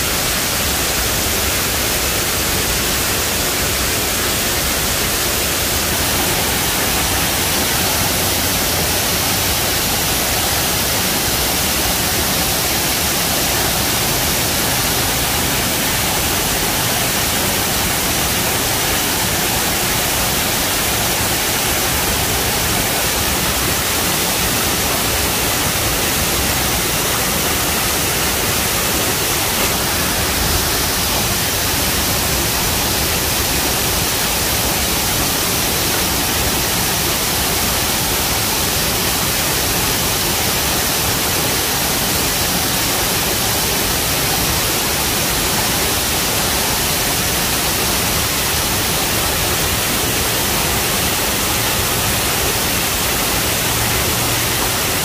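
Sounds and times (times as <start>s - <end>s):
waterfall rushing onto rocks: 0.0s - 55.0s.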